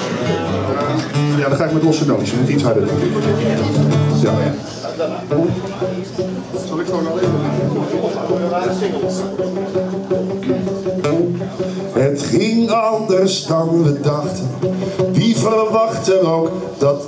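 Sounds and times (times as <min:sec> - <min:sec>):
acoustic guitars strumming: 0:00.0 - 0:17.0.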